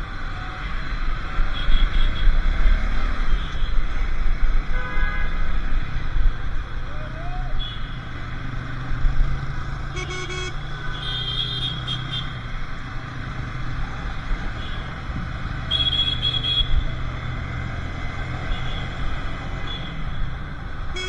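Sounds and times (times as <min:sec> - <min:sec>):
motorcycle engine and road rumble: 0:00.0 - 0:21.0
vehicle horns honking: 0:09.9 - 0:12.5, 0:15.7 - 0:16.9.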